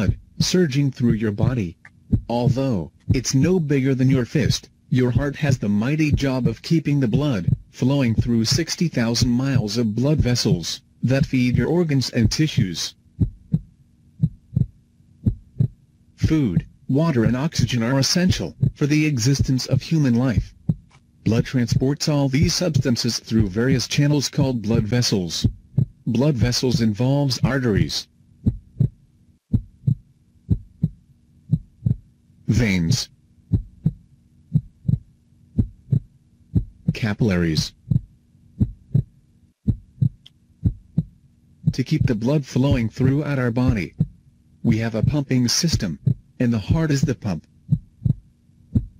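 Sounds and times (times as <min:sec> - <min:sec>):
faint steady hum: 0:00.0 - 0:48.9
heartbeat thumps: 0:00.0 - 0:48.9.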